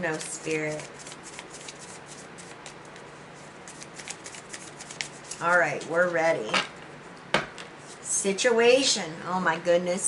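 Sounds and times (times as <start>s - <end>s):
cards being shuffled: 3.7s - 5.9s.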